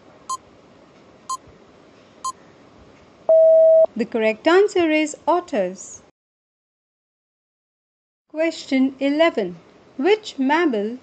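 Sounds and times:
long low steady tone: 0:03.3 - 0:03.9
short electronic beeps: 0:03.3 - 0:03.9.

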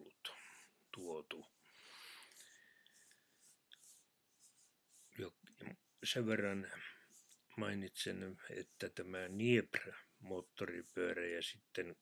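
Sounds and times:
faint soft hisses: 0:00.0 - 0:11.9.

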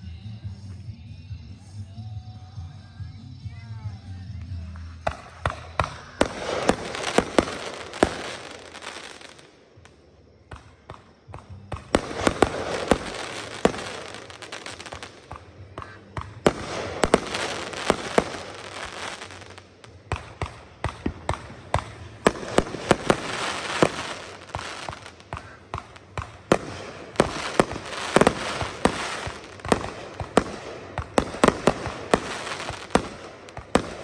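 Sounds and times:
crackling hiss of fireworks: 0:00.0 - 0:34.0
fireworks bangs: 0:05.0 - 0:09.9, 0:10.5 - 0:34.0.

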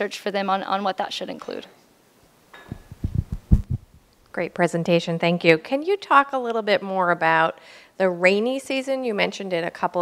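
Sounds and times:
sharp knock on microphone: 0:02.6 - 0:03.9
microphone handling thumps: 0:02.6 - 0:04.0.

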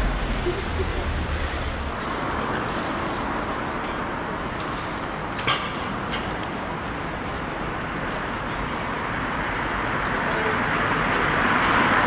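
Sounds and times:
city street traffic: 0:00.0 - 0:12.0
vehicle rumble: 0:00.0 - 0:12.0.

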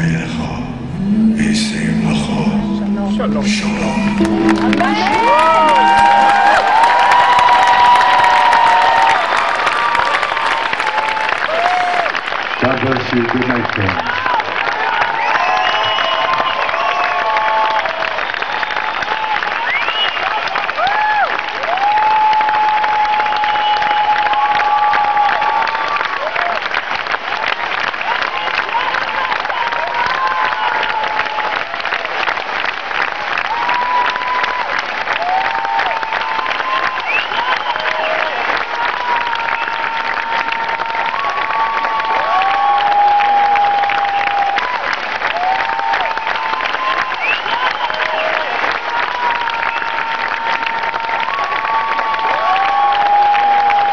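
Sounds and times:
crowd cheering: 0:01.0 - 0:53.9
crowd clapping: 0:03.3 - 0:53.9.

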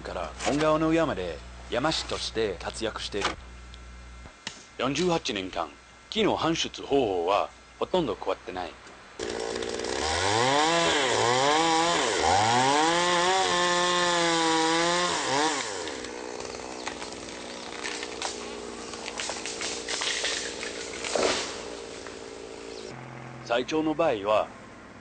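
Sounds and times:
chainsaw revving: 0:09.2 - 0:23.0
cracks and knocks: 0:16.8 - 0:22.2.

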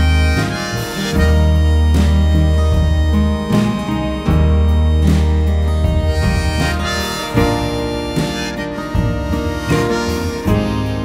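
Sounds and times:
harmonica melody: 0:00.0 - 0:11.0
strummed acoustic guitar: 0:00.0 - 0:11.0.

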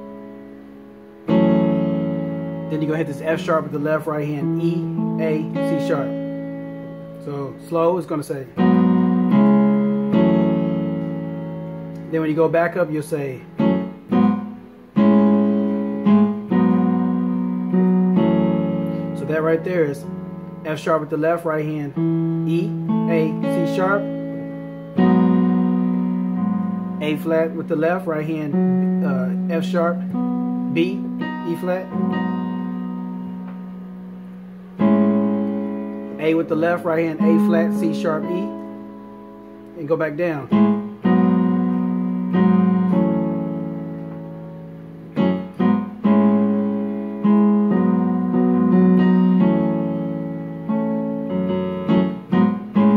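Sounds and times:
piano chord on keyboard: 0:00.0 - 0:52.9.

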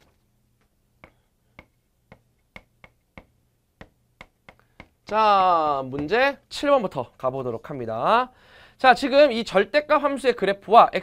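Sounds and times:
chalk clicking on a chalkboard: 0:01.0 - 0:05.2.

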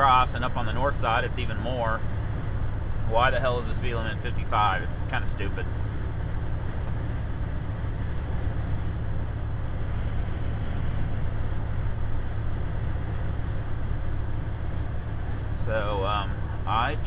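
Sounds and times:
diesel engine drone: 0:00.0 - 0:17.0
tyre and road noise: 0:00.0 - 0:17.0
wind: 0:00.0 - 0:17.0.

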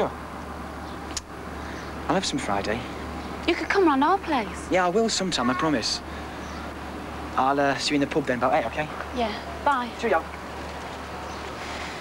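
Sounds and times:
low constant hum: 0:00.0 - 0:12.0
road traffic: 0:00.0 - 0:12.0.

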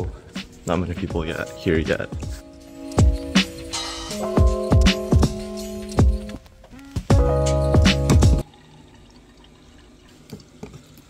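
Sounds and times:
background music with a beat: 0:00.0 - 0:08.4
water drips: 0:07.7 - 0:11.0
water pouring into a container: 0:08.4 - 0:11.0.

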